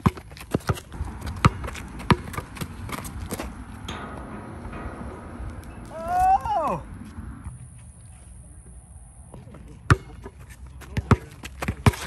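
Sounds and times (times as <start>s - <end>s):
basketball bouncing on concrete: 0.0s - 5.9s, 9.9s - 10.2s, 10.8s - 12.0s
steady low rumble: 0.9s - 9.9s.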